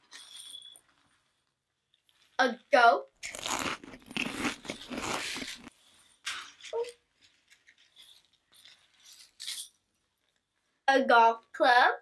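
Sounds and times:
beanbag pellets crunching: 3.2 - 5.7.

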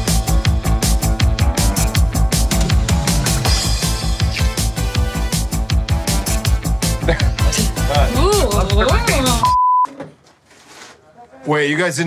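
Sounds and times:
censor bleep: 9.4 - 9.9.

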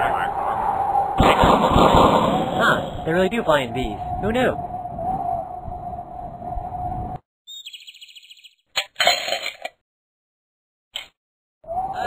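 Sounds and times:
high chirps: 7.5 - 8.6.

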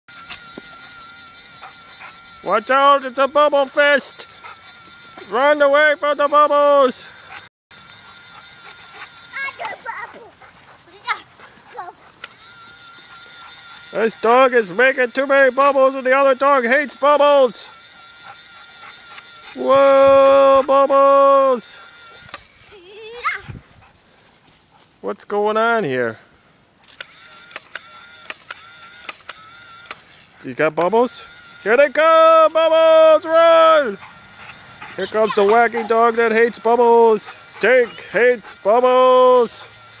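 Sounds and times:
small electric motor whining: 0.1 - 24.2, 26.8 - 40.0
sharp clicks: 26.8 - 30.0.

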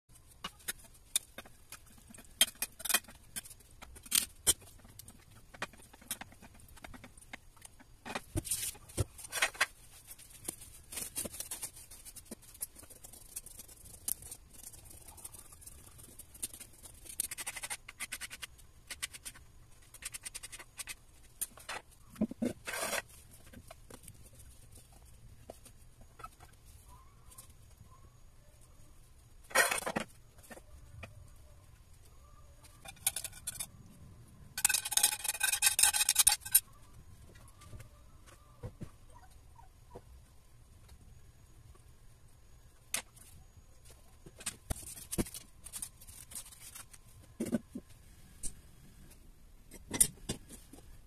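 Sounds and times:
rustling: 0.1 - 27.9.

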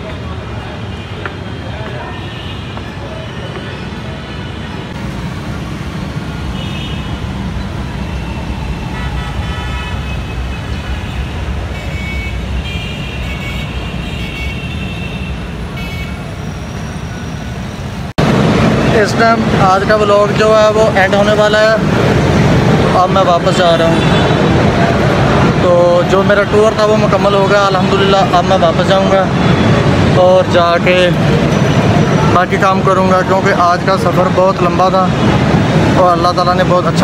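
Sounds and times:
street traffic rumble: 0.0 - 37.0
vehicle horns beeping: 8.9 - 17.1.

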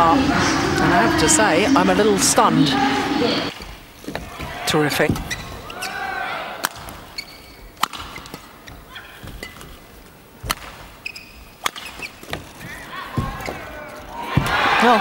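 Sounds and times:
crowd noise: 0.0 - 11.0, 12.3 - 15.0
shoes squeaking on court: 4.0 - 6.0, 6.8 - 14.2
racket striking shuttlecock: 6.6 - 7.1, 7.7 - 8.5, 10.4 - 12.4.

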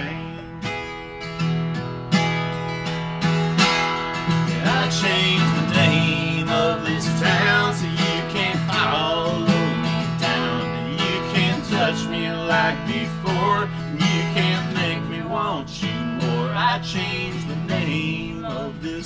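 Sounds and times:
acoustic guitar strumming: 0.0 - 19.0.

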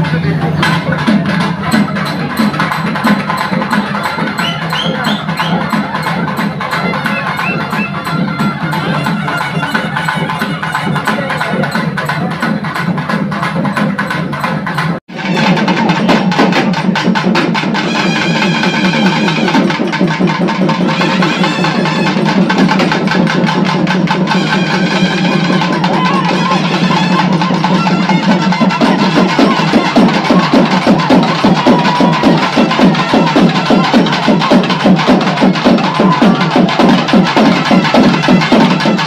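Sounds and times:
fast dense drumming: 0.0 - 39.0
music: 0.0 - 39.0.

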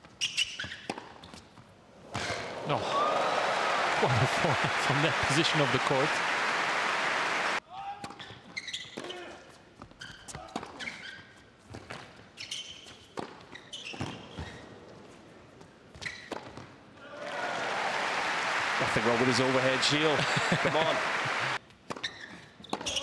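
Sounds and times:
shoe squeaks: 0.0 - 1.6, 8.2 - 15.0, 15.9 - 16.6, 21.9 - 23.0
crowd applause: 2.4 - 7.6, 17.2 - 21.6.

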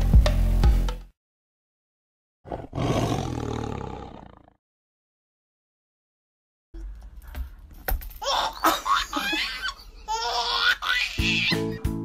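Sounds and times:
tiger roar: 2.4 - 4.6.

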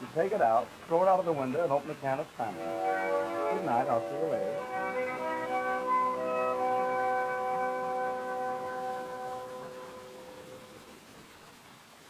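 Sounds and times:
faint disc hiss: 0.0 - 12.0
accordion sustained chord: 2.4 - 11.2.

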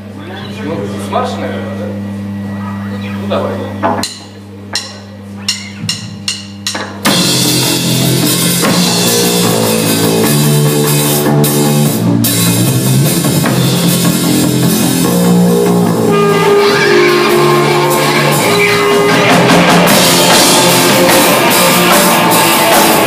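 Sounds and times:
low amplifier hum: 0.0 - 23.0
live punk rock band playing: 4.7 - 23.0.

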